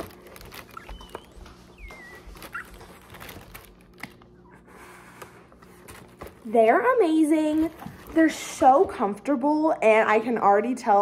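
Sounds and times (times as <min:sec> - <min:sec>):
cardboard box and tissue paper rustling: 0:00.0 - 0:04.0
faint high-pitched squeaks: 0:00.4 - 0:03.5.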